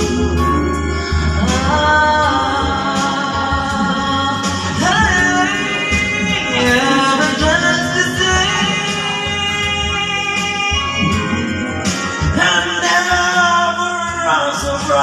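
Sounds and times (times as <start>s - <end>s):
backing track over loudspeakers: 0.0s - 15.0s
person singing into a microphone: 0.0s - 15.0s.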